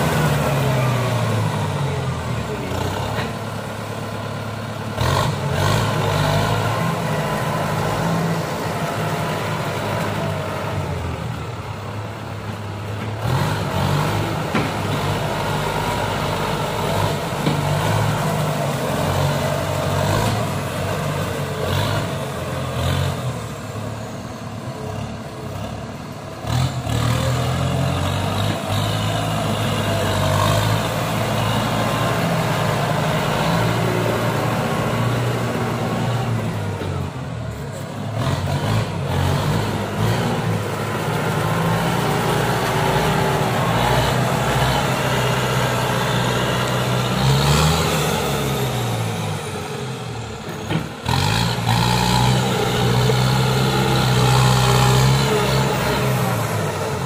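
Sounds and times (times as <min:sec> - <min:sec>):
tractor diesel engine revving: 0:00.0 - 0:57.0.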